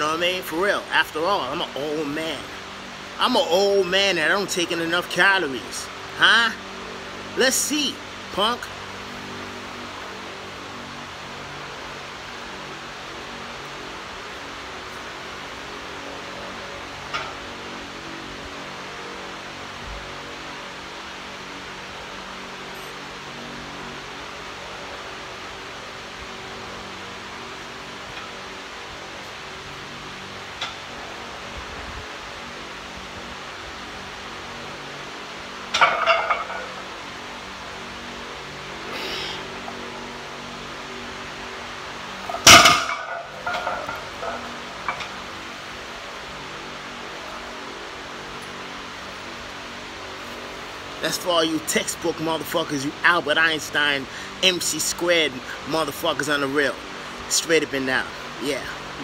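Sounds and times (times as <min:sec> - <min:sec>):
room hiss and low hum: 0:00.0 - 0:59.0
barbell clattering: 0:35.7 - 0:36.8, 0:42.3 - 0:45.1.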